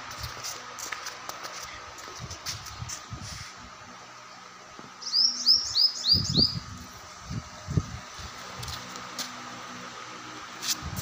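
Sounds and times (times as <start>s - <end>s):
small bird chirping: 5.0s - 6.6s.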